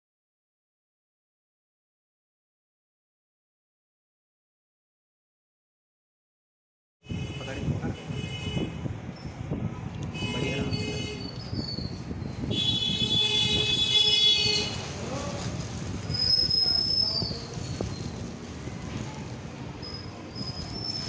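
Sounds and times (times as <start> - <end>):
high-pitched horn-like tones: 12.5 - 14.9.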